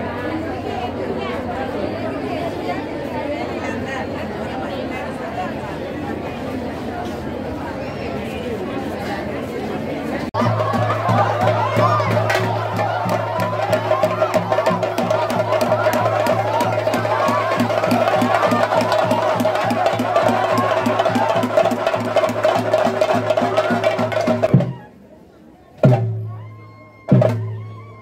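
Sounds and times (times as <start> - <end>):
fast drumming: 10.4 - 24.8.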